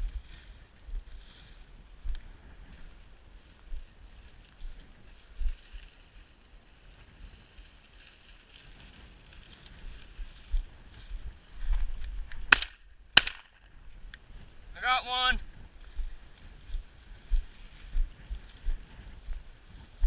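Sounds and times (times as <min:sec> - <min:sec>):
wind noise on microphone: 0:00.0 - 0:20.0
shotgun shots: 0:12.5 - 0:13.7.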